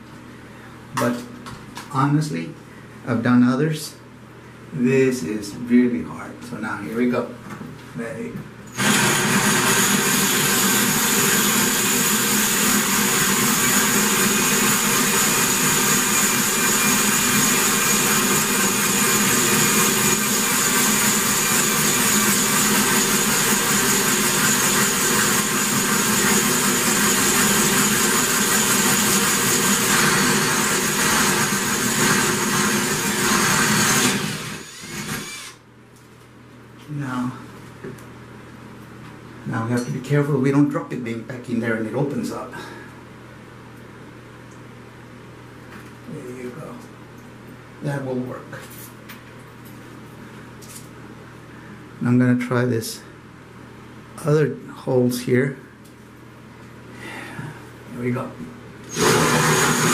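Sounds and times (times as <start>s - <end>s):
cordless drill boring through tile: 8.7s - 35.6s, 58.9s - 59.9s.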